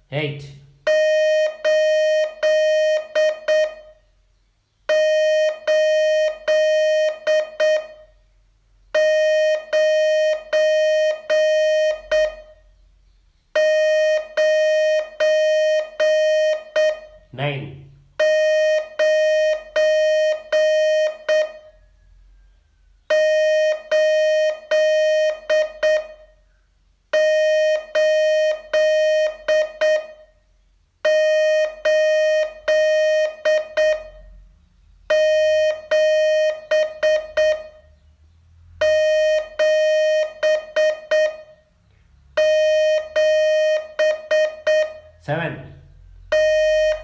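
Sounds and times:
morse code tone: 0:00.8 - 0:04.0, 0:04.9 - 0:08.2, 0:08.9 - 0:12.7, 0:13.6 - 0:21.9, 0:23.1 - 0:26.4, 0:27.1 - 0:30.4, 0:31.0 - 0:34.4, 0:35.1 - 0:38.1, 0:38.8 - 0:41.7, 0:42.4 - 0:47.0.

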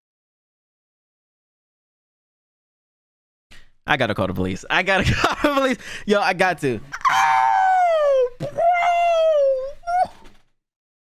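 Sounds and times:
high-pitched voice wailing: 0:07.0 - 0:10.2.

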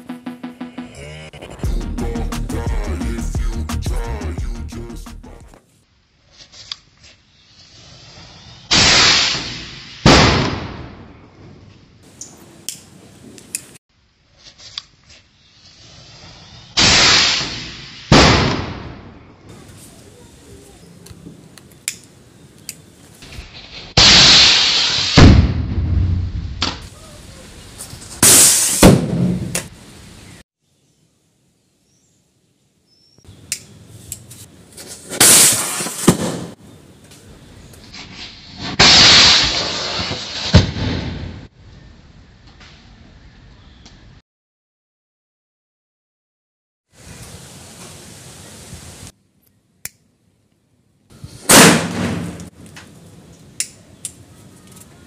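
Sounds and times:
firecracker rocket rushing hiss: 0:07.4 - 0:10.5, 0:15.3 - 0:18.8, 0:23.2 - 0:25.6, 0:26.8 - 0:30.0, 0:34.9 - 0:36.6, 0:37.9 - 0:41.4
sharp firecracker cracks: 0:08.7 - 0:11.1, 0:16.8 - 0:19.1, 0:23.4 - 0:25.7, 0:35.1 - 0:36.6, 0:51.5 - 0:52.6.

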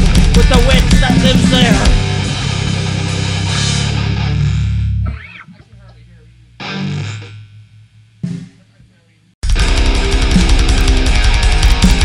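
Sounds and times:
heavy metal band playing: 0:00.0 - 0:05.2, 0:06.6 - 0:07.5, 0:09.4 - 0:12.0
distorted guitar hits ringing: 0:00.0 - 0:08.7.

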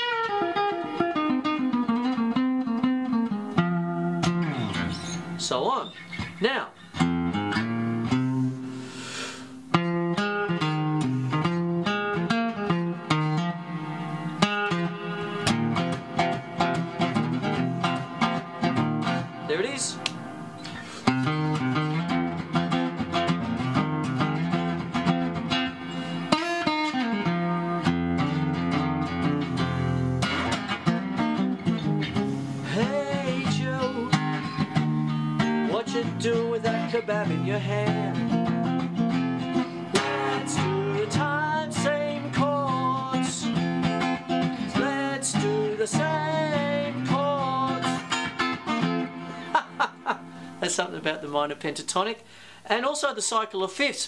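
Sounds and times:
acoustic guitar blues playing: 0:00.0 - 0:53.9.

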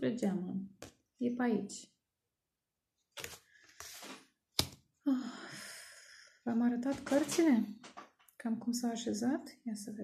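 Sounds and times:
cards rustling: 0:03.2 - 0:04.8.

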